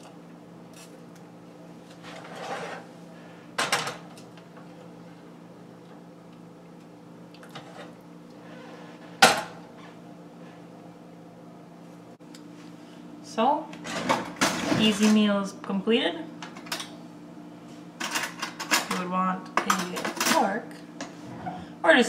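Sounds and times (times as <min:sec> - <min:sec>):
steady low hum: 0:00.0 - 0:22.0
pot scraping: 0:02.0 - 0:02.9.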